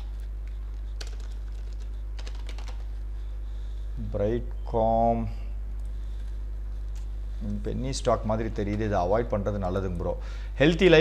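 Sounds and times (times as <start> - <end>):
computer keyboard typing: 0.0 - 3.0
steady low hum: 0.0 - 11.0.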